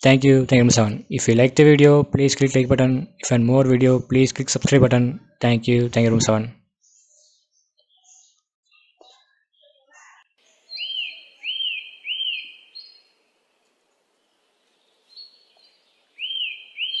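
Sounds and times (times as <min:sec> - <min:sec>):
bird chirping: 0:04.6 - 0:17.0.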